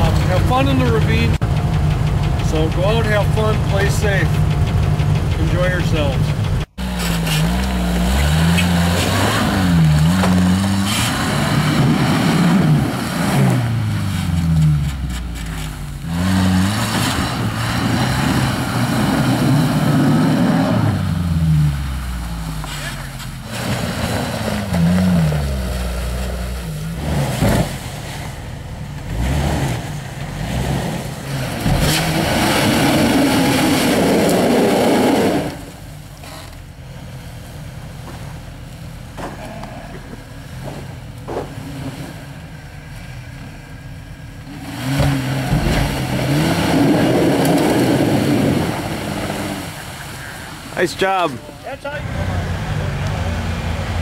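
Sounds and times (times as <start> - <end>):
car engine revving under load: 0.0 - 54.0.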